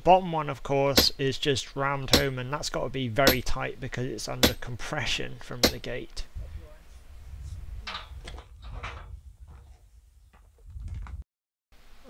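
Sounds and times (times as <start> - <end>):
wind noise on microphone: 6.2 - 11.2
metal gate knocks and clanks: 7.8 - 9.1.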